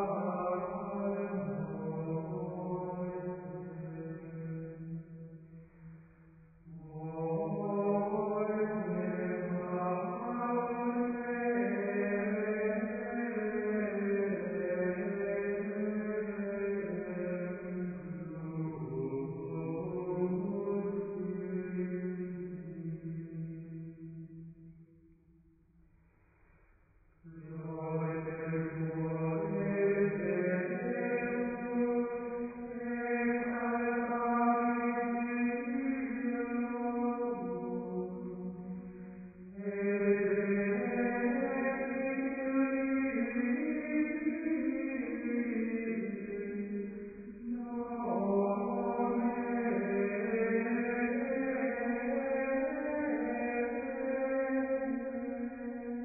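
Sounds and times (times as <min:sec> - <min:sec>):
chanted singing: 0:00.0 - 0:05.3, 0:06.7 - 0:23.8, 0:27.3 - 0:56.0.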